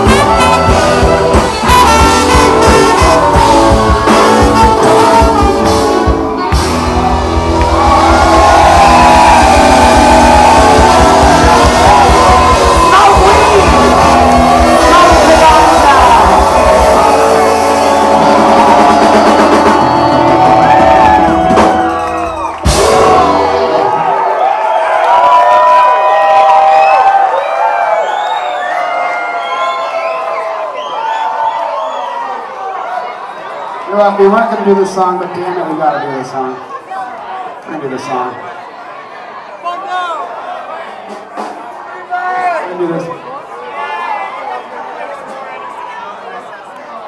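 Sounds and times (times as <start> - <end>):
live rock band playing: 0.0 - 24.4
audience cheering and whooping: 0.0 - 34.2.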